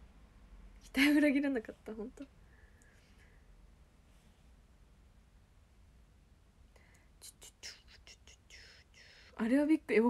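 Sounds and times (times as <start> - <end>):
woman whispering: 7.2 - 9.8.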